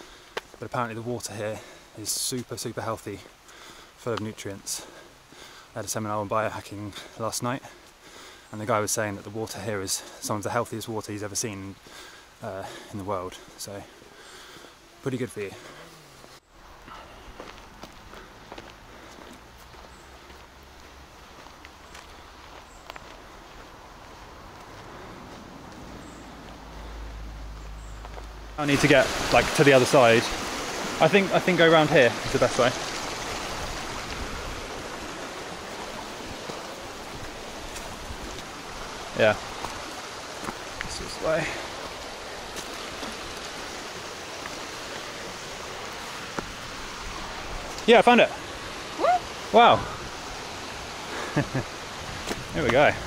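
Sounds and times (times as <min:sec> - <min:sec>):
footsteps on dirt path: 0:00.0 - 0:00.7, 0:11.7 - 0:28.5, 0:33.4 - 0:47.9, 0:51.8 - 0:53.0
mountain river rushing: 0:00.0 - 0:53.0.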